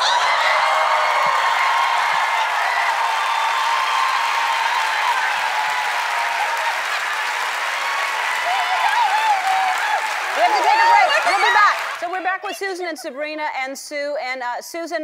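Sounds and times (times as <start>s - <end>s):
women screaming in excitement: 0.0s - 11.8s
audience applauding and cheering: 0.0s - 12.5s.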